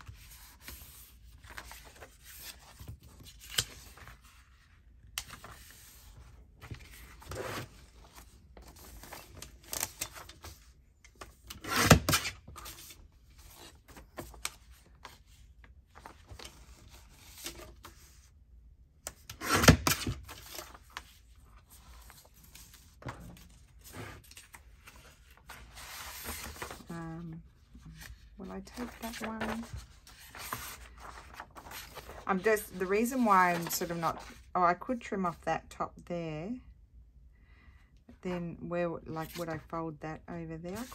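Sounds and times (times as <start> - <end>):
paper rustling and sliding: 19.2 - 27.0, 27.9 - 34.5.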